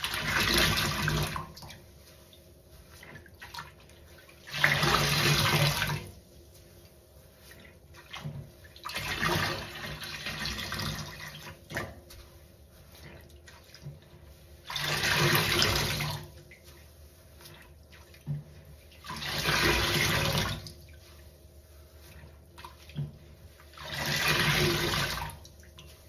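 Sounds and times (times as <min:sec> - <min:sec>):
water gushing from squeezed sponge: 0:00.0 - 0:06.3, 0:07.3 - 0:26.0.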